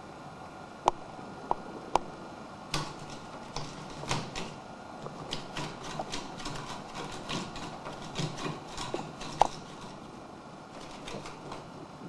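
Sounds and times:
cat scratching wood: 2.7 - 10.1, 10.7 - 11.8.

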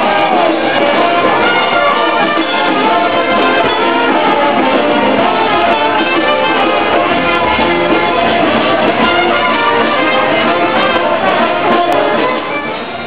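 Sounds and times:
live brass band music: 0.0 - 13.0
trumpet: 0.0 - 13.0.

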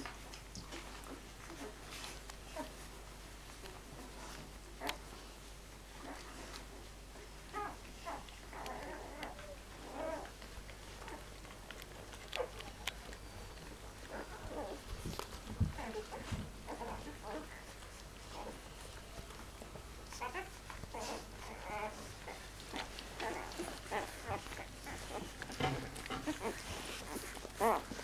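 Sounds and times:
puppies squeaking: 12.2 - 28.0.

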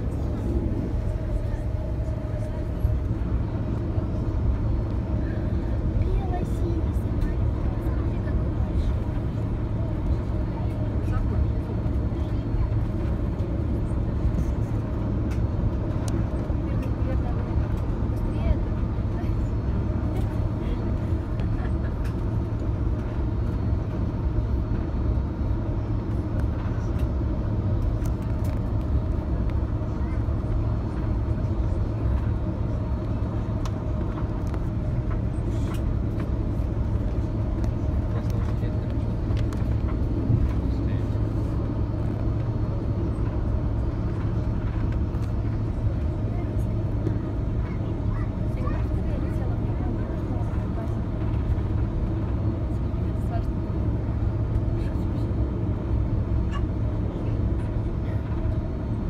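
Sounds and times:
jet engines rumbling and humming: 0.0 - 59.0.

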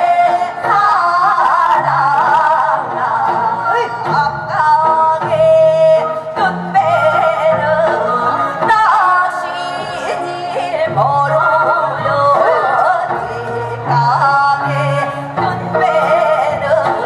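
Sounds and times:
amplified backing track: 0.0 - 17.0
women singing folk song: 0.0 - 17.0.

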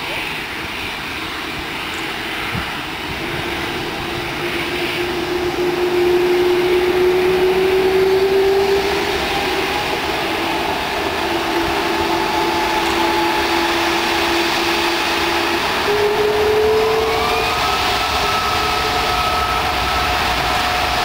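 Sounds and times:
jet engines whining: 0.0 - 21.0.

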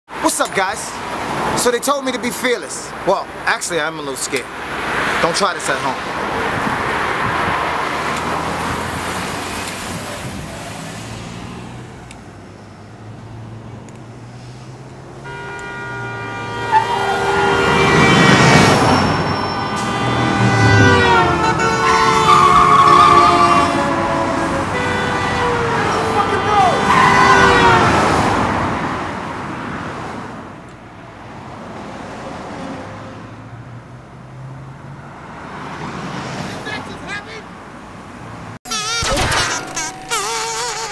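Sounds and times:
cars driving past: 0.2 - 38.6
car horns blasting: 15.2 - 28.1, 38.6 - 40.9.

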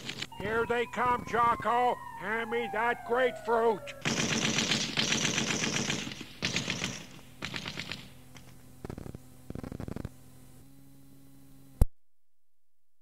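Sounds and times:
steady low hum: 0.0 - 11.9
machine-gun fire bursts: 4.0 - 8.4.

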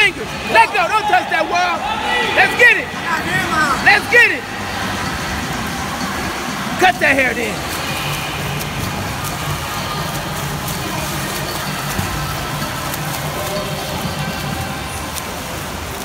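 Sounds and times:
swimmer splashing in pool: 0.0 - 16.0.

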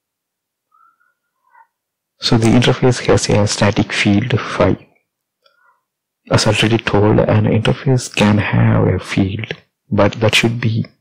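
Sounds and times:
faint high-pitched chirp: 0.7 - 1.8.

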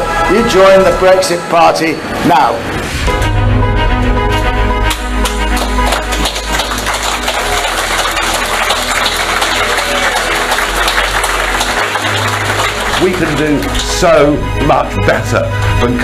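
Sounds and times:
instrumental background music: 0.0 - 16.0.

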